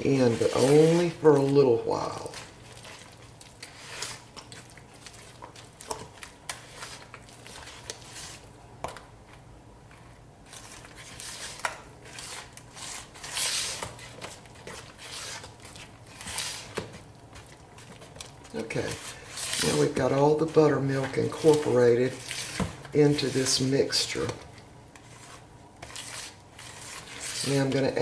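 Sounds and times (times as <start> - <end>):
spatula scraping batter in bowl: 0.0 - 8.5, 10.0 - 28.0.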